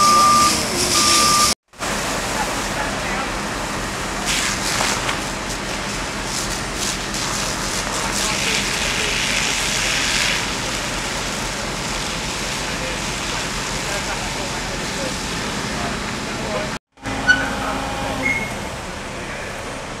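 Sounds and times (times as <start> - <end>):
fire hoses hissing: 0.0 - 17.4
low engine hum: 12.8 - 20.0.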